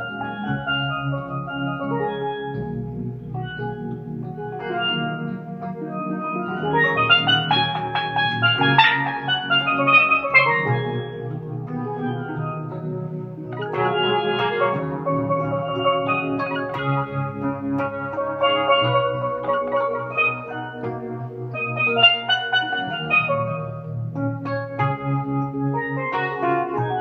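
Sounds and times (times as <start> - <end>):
electronic keyboard chords: 0.0 - 27.0
steelpan melody: 0.0 - 27.0.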